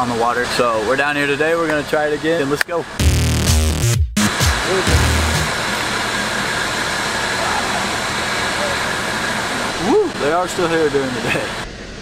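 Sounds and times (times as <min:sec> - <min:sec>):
hip-hop backing track: 0:03.0 - 0:05.6.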